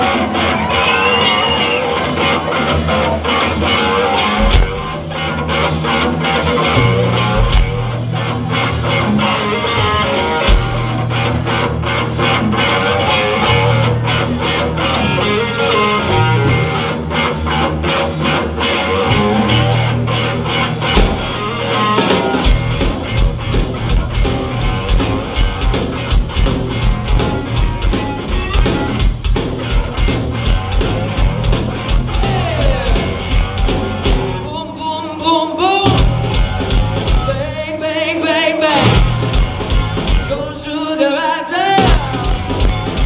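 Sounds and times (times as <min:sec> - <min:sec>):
sustained bass notes: 0:00.0 - 0:35.0, 0:35.7 - 0:37.8, 0:38.7 - 0:40.6, 0:41.8 - 0:43.0
blues-rock band playing: 0:00.0 - 0:43.0
drum hits: 0:04.3 - 0:05.0, 0:20.9 - 0:21.5.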